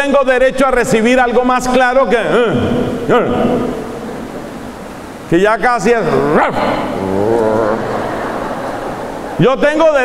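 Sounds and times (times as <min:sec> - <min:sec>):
man grunting into microphone: 0:06.0 - 0:08.1.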